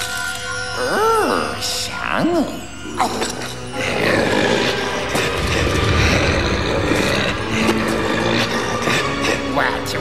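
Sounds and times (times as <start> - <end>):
background music: 0.0 - 10.0
cartoon monster roaring: 3.8 - 8.7.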